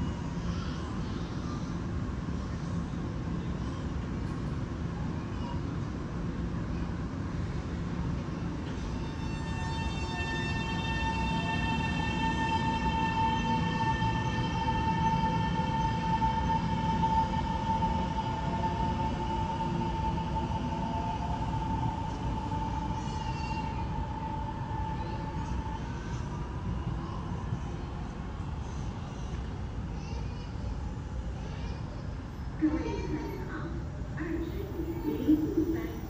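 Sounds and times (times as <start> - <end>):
train rolling rumble: 0.0 - 36.0.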